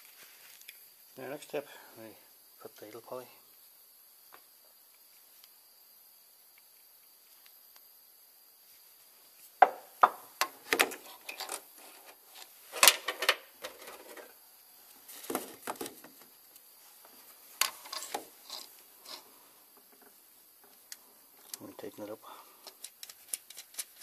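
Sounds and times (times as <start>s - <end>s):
metal parts clinking and scraping: 12.7s - 14.3s, 17.6s - 19.3s, 22.7s - 24.0s.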